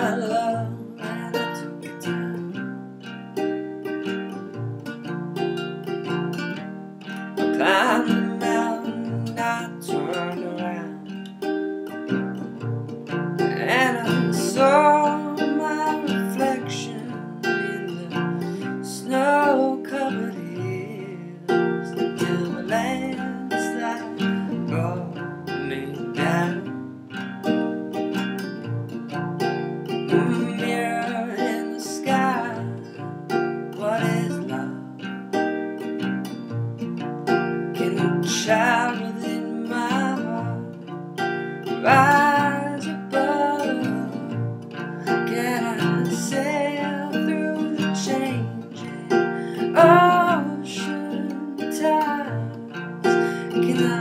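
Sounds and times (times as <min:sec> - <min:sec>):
man singing: 0:00.0 - 0:02.7, 0:07.4 - 0:11.2, 0:13.4 - 0:26.8, 0:29.9 - 0:33.0, 0:33.6 - 0:35.1, 0:37.7 - 0:40.9, 0:41.6 - 0:54.0
fingerpicked acoustic guitar: 0:00.0 - 0:54.0.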